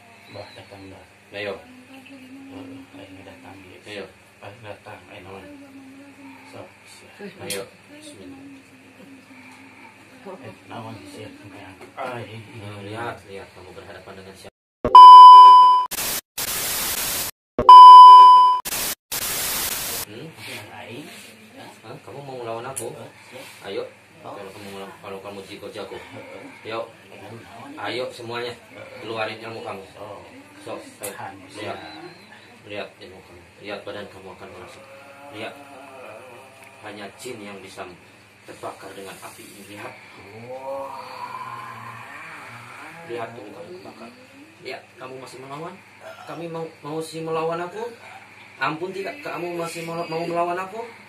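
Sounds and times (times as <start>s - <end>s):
high electronic beep: 14.9s - 15.9s, 17.6s - 18.7s
white-noise static bursts: 15.6s - 20.1s
man growling hum: 34.4s - 37.3s, 39.8s - 44.5s.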